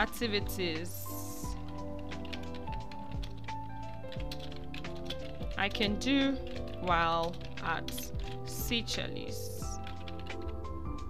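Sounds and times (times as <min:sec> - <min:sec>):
background music: 0:00.0 - 0:11.0
keyboard typing clicks: 0:01.5 - 0:08.4.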